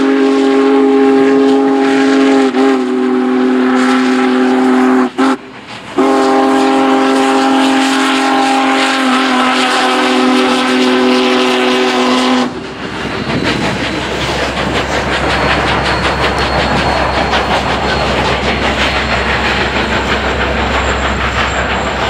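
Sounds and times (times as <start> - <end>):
steam locomotive chime whistle: 0.0 - 22.0
steam train passing: 0.0 - 22.0.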